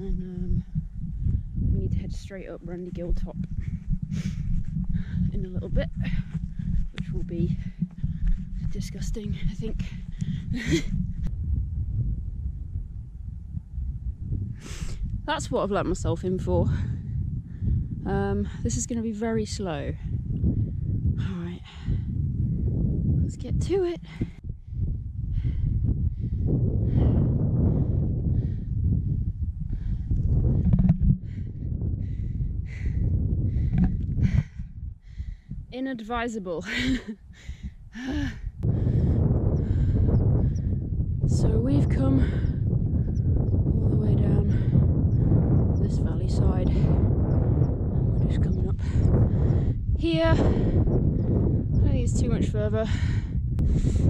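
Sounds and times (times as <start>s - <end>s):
wind buffeting microphone: 0.0s - 54.0s
runner breathing hard: 3.5s - 11.3s, 21.6s - 22.7s, 24.0s - 35.7s, 36.7s - 41.0s, 44.5s - 45.6s, 48.8s - 51.8s, 52.8s - 54.0s.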